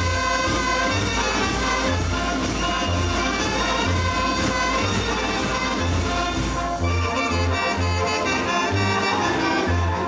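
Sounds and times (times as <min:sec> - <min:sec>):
steady percussion beat: 0:00.0 - 0:07.7
wind band playing dance tune: 0:00.0 - 0:10.0.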